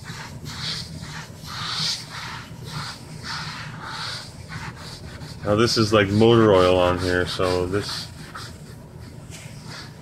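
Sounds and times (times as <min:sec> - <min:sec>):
sponge scrubbing on wooden desktop: 0:00.0 - 0:10.0.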